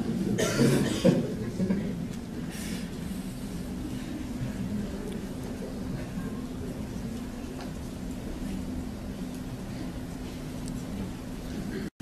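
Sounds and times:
audience murmuring: 0:00.0 - 0:12.0
person coughing: 0:00.4 - 0:01.2.

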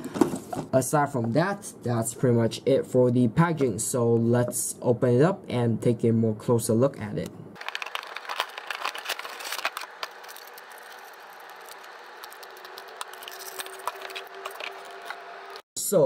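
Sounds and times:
plastic and cardboard crinkling: 0:07.6 - 0:15.6.

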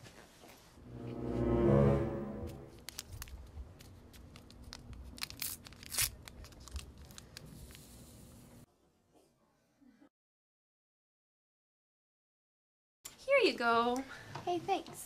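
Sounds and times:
swelling musical chord: 0:00.8 - 0:02.8
paper packet crinkling and tearing: 0:02.8 - 0:07.8.

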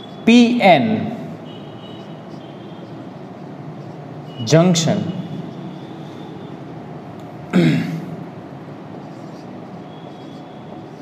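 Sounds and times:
low background hum: 0:00.0 - 0:11.0
marker squeaking on whiteboard: 0:01.8 - 0:04.5, 0:08.9 - 0:11.0.

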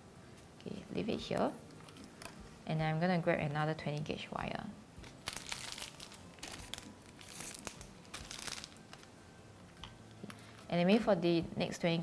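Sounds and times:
packaging crinkling: 0:05.0 - 0:09.2.

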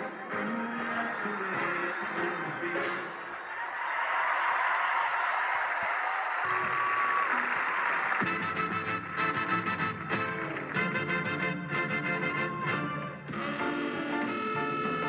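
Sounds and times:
audience cheering and applauding: 0:00.0 - 0:15.0
samba band music: 0:08.1 - 0:15.0.

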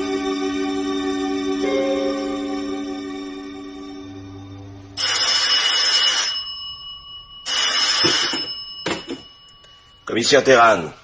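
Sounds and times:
telephone bell ringing: 0:05.0 - 0:10.1.

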